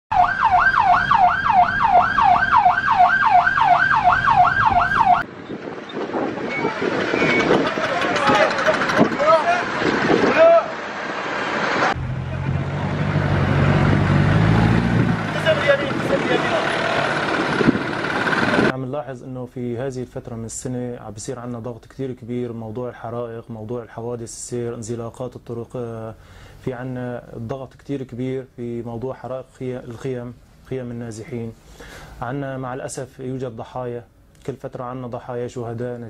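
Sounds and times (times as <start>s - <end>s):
siren yelping: 0.1s - 5.3s
outdoor voices: 6.2s - 18.8s
vehicle engine running: 10.8s - 18.7s.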